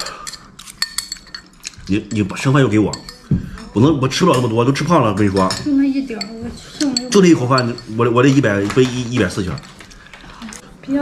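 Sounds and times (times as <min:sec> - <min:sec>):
chopsticks clinking on ceramic bowls: 0:00.0 - 0:10.6.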